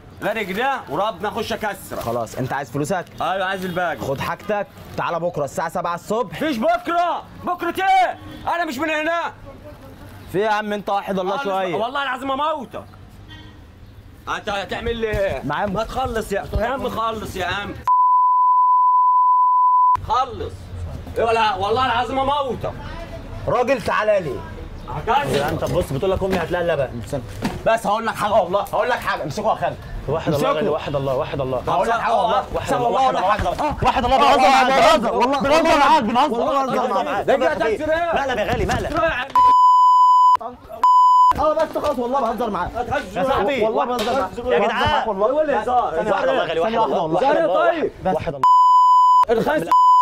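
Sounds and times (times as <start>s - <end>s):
men arguing agitatedly: 0.2s - 13.0s, 14.2s - 17.8s, 20.0s - 39.5s, 41.4s - 48.4s
high censor bleep: 17.9s - 20.0s, 39.4s - 41.4s, 48.4s - 50.0s.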